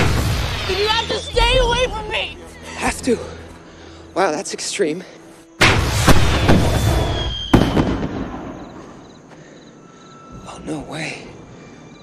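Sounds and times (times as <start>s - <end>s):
fireworks bang: 5.6s - 8.8s.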